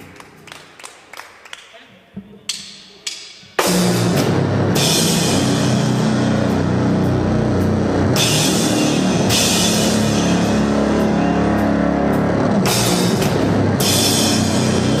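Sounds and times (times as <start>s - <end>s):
drum kit pounding: 3.5s - 15.0s
cymbals crashing: 3.6s - 15.0s
dense bass: 3.6s - 15.0s
heavy music: 3.6s - 15.0s.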